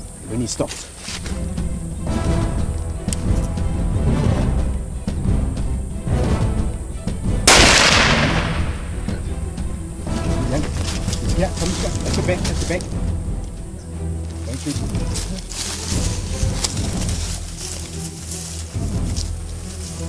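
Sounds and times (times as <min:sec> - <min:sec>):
background music: 0:00.0 - 0:20.0
rifle shot: 0:07.5 - 0:09.0.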